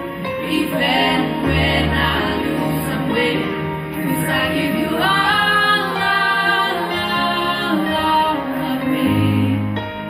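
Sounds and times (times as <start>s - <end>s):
backing track: 0.0s - 10.0s
two female voices singing: 0.5s - 9.8s.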